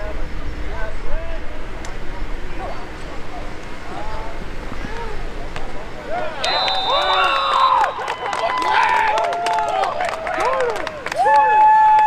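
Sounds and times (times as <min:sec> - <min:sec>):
people shouting and calling: 0:02.4 - 0:12.0.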